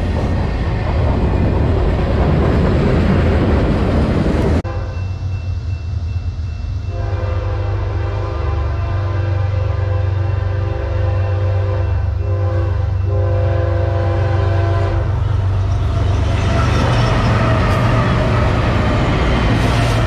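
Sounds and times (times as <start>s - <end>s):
locomotive air horn: 4.6s - 5.0s, 6.9s - 15.2s.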